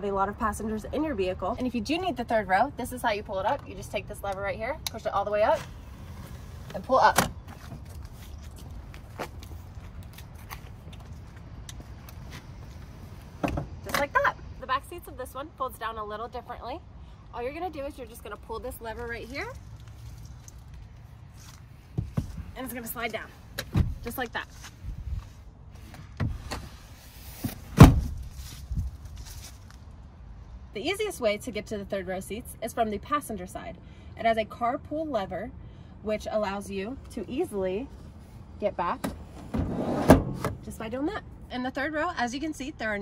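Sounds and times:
faint clicks and rustles: 18.3s - 26.6s
seatback clunk: 23.6s - 24.1s, 27.4s - 28.2s.

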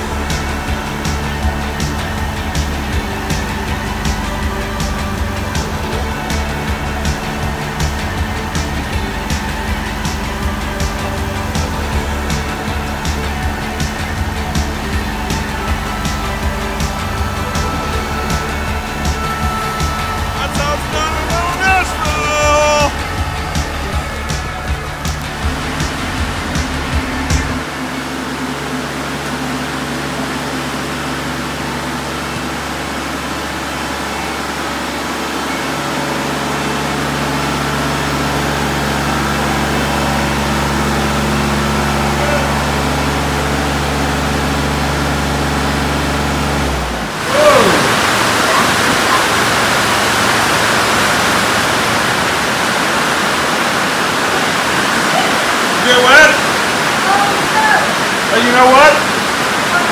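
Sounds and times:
steady rushing noise: 0.0s - 59.9s
tractor diesel engine humming: 0.0s - 59.9s.

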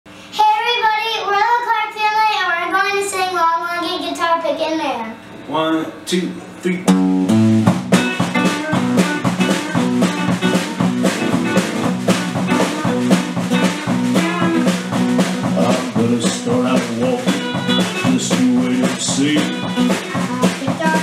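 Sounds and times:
drum kit beat: 6.5s - 21.0s
live country band playing: 6.9s - 21.0s.

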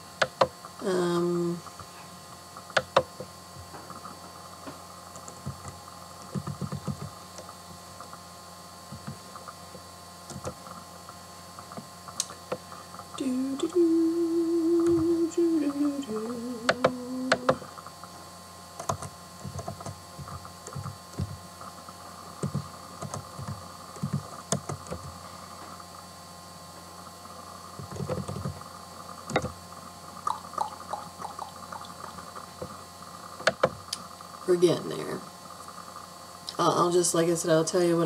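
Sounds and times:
woman humming: 0.8s - 1.7s, 13.2s - 17.7s
laptop keys typing: 5.2s - 7.1s, 18.8s - 21.4s, 22.4s - 25.1s.

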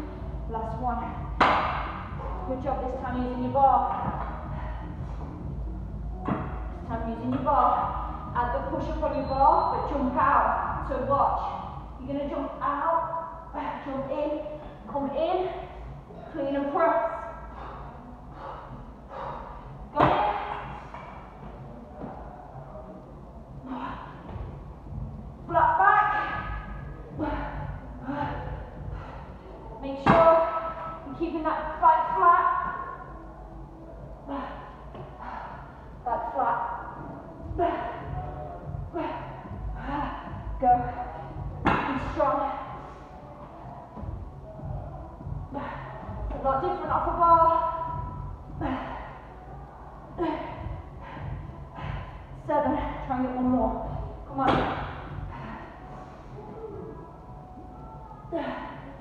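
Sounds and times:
woman's voice: 0.5s - 1.3s, 2.4s - 4.7s, 6.9s - 15.6s, 25.5s - 28.7s, 29.8s - 33.0s, 36.0s - 38.2s, 38.9s - 42.8s, 45.5s - 49.2s, 50.1s - 55.8s.

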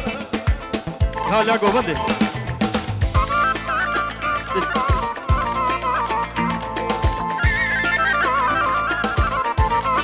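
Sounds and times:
folk dance melody: 0.0s - 10.0s.

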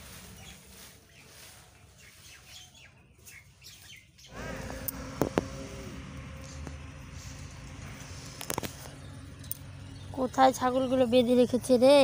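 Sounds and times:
small birds chirping: 0.0s - 4.4s, 6.8s - 12.0s
outdoor background noise: 0.0s - 12.0s.

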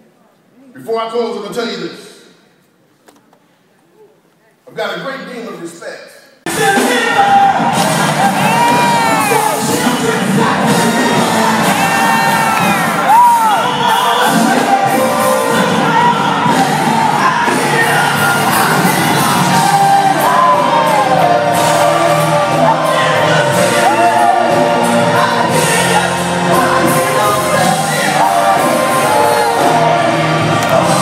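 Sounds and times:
choir singing with music: 6.5s - 31.0s
congregation cheering and shouting: 6.5s - 31.0s.

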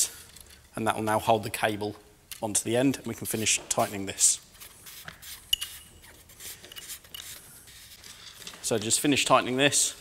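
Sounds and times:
hands rubbing plastic: 3.2s - 8.8s.

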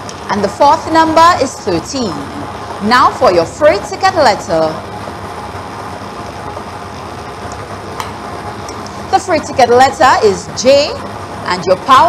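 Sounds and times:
lottery machine rushing noise: 0.0s - 12.0s.

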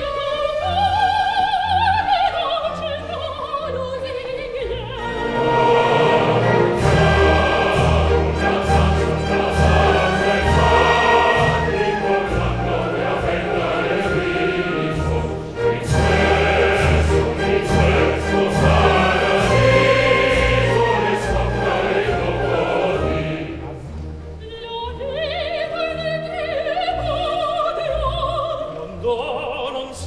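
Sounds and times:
opera chorus singing: 0.0s - 30.0s
orchestra playing: 4.6s - 28.5s.

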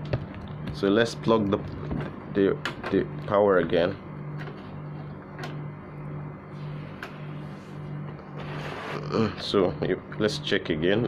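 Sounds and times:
pulsing low machine hum: 0.0s - 11.0s.

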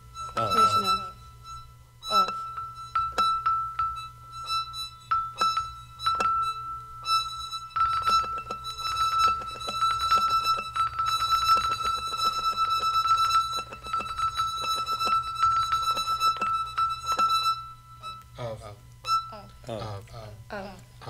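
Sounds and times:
high note tremolo roll: 0.0s - 19.6s.

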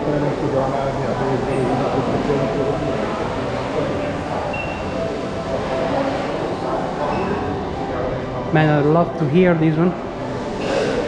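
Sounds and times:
murmur of many people talking: 0.0s - 11.0s.

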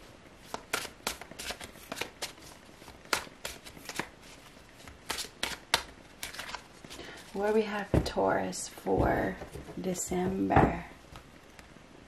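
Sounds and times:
cards being shuffled: 0.4s - 7.6s.

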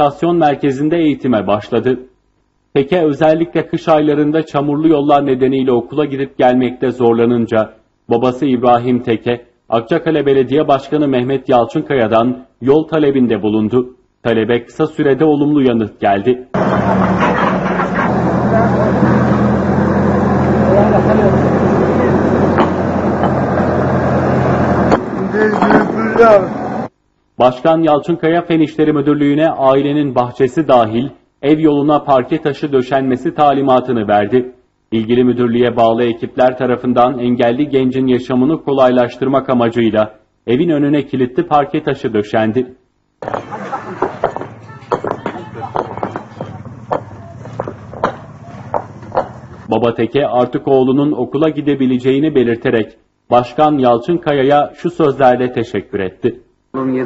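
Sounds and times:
diesel engine humming: 16.6s - 26.9s, 43.2s - 49.7s
men talking: 20.6s - 22.4s, 25.1s - 26.6s
paving stones clacking: 43.2s - 49.7s.

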